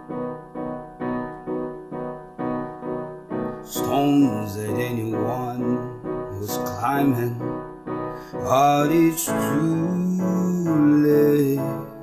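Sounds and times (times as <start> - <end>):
piano chords: 0.0 - 12.0.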